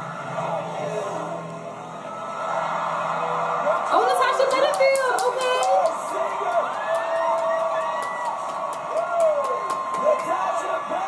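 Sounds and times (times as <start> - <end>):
sharp claps or clicks beat: 4.4 - 10.4.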